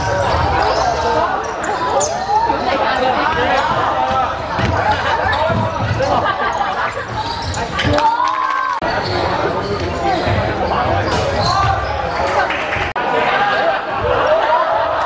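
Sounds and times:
people shouting in a hall: 7.8 - 8.9, 13.0 - 15.0.

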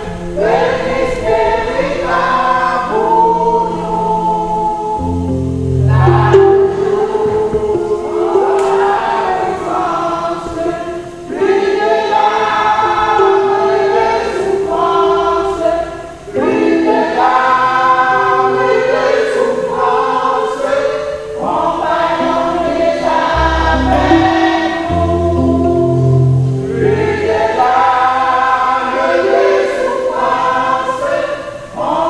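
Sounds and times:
women's choir singing: 0.0 - 32.0.

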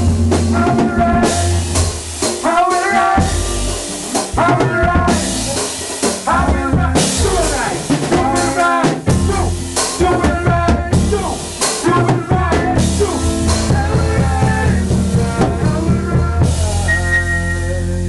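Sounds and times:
drum kit beat with rimshots: 0.0 - 18.0.

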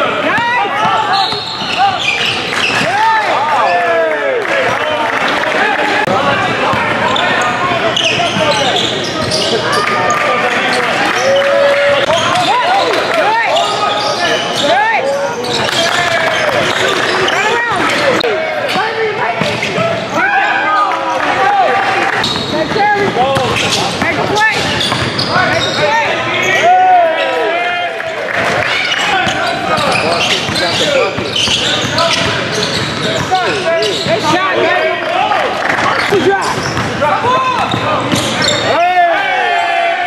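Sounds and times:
sneakers squeaking: 0.0 - 3.8, 6.0 - 21.4, 22.0 - 27.4, 28.6 - 38.8
players calling out: 0.0 - 40.0.

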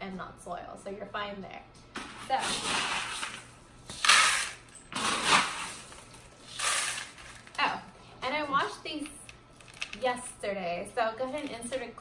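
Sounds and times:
clay pebbles rattling into plastic pot: 6.5 - 7.7, 8.9 - 10.2.

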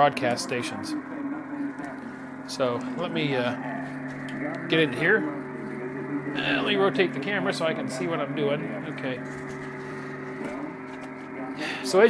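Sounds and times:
steady drone of low tones: 0.0 - 12.0
man's voice: 4.6 - 9.2.

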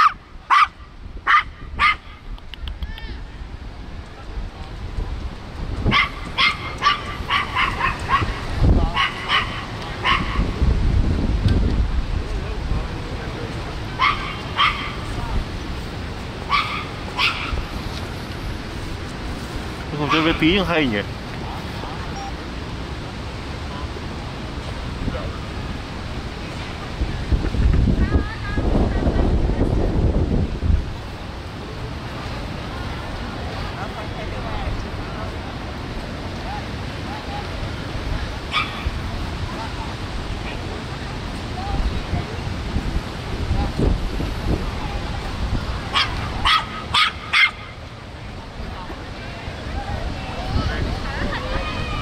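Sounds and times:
small dog yipping: 0.0 - 3.1, 5.9 - 8.4, 9.0 - 10.4, 14.0 - 15.0, 16.5 - 17.6, 38.5 - 38.9, 45.9 - 47.8
wind noise on microphone: 0.0 - 52.0.

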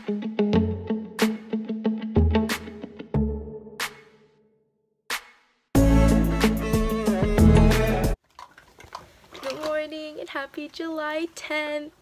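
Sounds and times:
background music: 0.0 - 4.4, 5.1 - 8.2
young woman speaking: 9.4 - 12.0.

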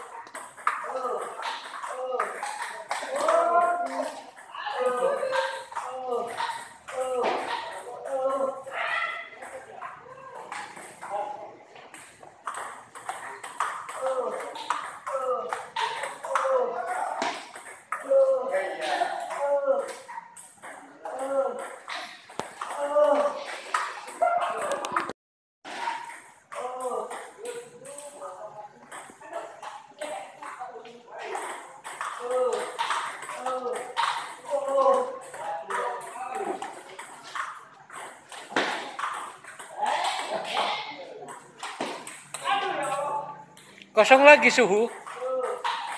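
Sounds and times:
background chatter: 0.0 - 25.1, 26.4 - 45.9
table tennis balls clicking: 0.0 - 45.9.

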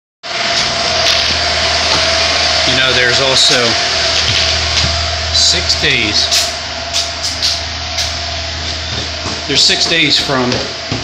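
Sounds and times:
machine whining and humming: 0.2 - 11.0.

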